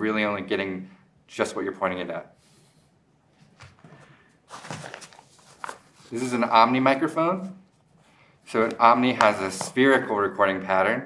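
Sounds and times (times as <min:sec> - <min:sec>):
fabric pouch rustling: 0:03.4 - 0:06.6.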